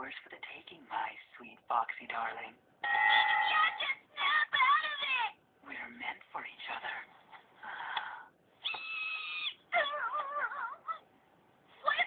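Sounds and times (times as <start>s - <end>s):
cartoon character cries and whimpers: 8.6s - 11.0s.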